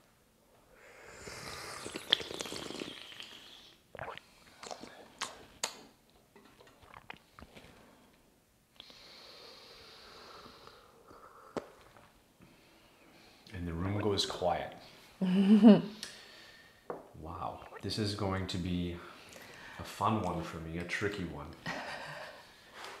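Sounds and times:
slurping sips of tea: 0:01.0 - 0:05.5.

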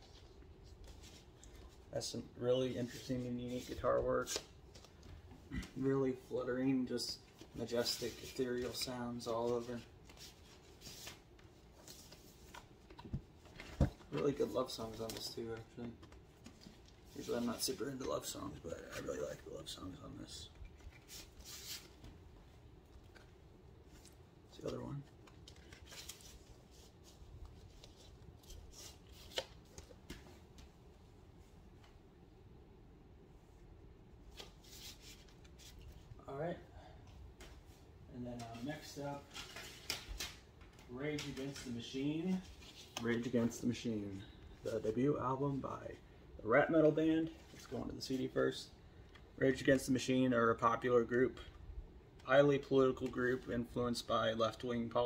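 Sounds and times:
paper and cardboard rustling: 0:00.0 - 0:22.2, 0:23.9 - 0:30.4, 0:38.3 - 0:44.9.

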